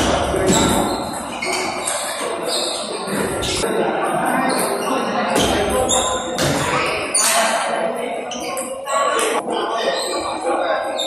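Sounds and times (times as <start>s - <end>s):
voices in a hall: 0.0s - 11.0s.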